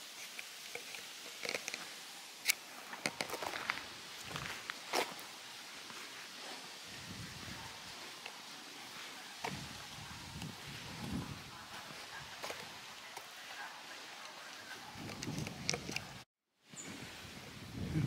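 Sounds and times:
footsteps on grass and leaves: 0.0s - 16.2s.

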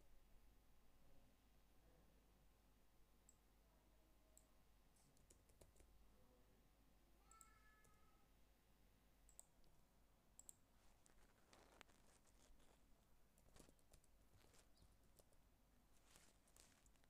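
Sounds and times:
keyboard typing: 5.1s - 5.9s, 10.4s - 15.4s
mouse clicks: 9.3s - 9.8s, 10.4s - 12.7s.

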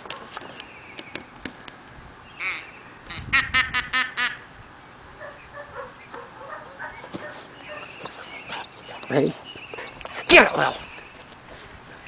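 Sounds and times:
duck quacking: 2.4s - 4.4s.

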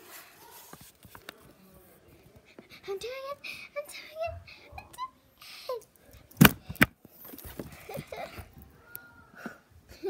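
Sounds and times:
phone rustling and handling: 6.3s - 8.3s.

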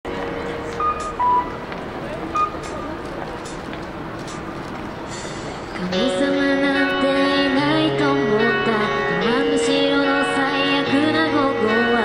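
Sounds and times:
city street noise: 0.0s - 12.0s
short electronic beeps: 0.8s - 1.5s, 2.3s - 2.8s.

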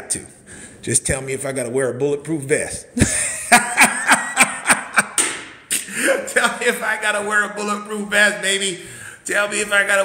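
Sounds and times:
man laughing: 3.0s - 6.8s.

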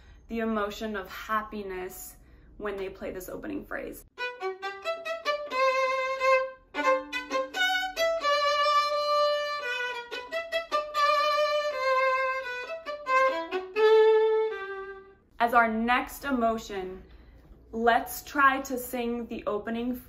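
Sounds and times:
solo violin: 4.2s - 15.3s.

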